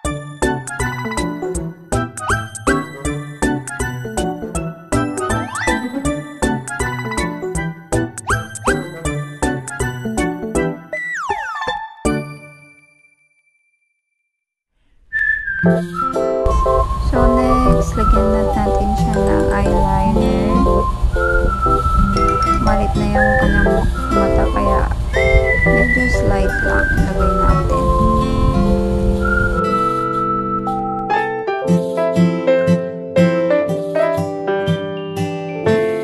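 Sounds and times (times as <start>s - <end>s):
cheerful music with whistle melody: 0.0s - 13.8s, 15.1s - 36.0s
acoustic guitar: 15.6s - 36.0s
bright ding: 22.2s - 22.8s.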